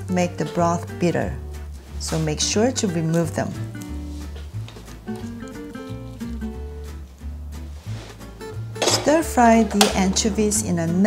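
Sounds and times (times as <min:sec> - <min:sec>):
instrumental background music: 0:00.0 - 0:11.0.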